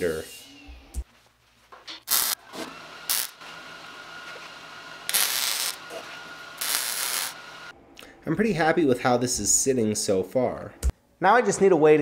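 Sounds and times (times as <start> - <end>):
welding arc crackling hiss: 2.1 - 2.4, 3.1 - 3.4, 5.1 - 6.0, 6.6 - 7.5.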